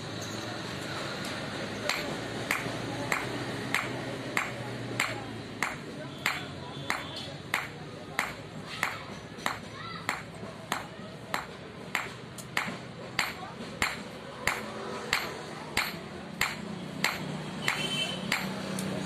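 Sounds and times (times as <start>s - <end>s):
hammer striking steel on anvil: 1.8s - 18.6s.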